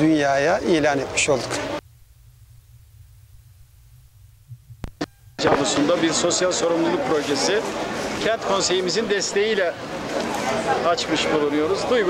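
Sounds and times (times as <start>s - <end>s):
low steady microphone rumble: 0.0s - 12.0s.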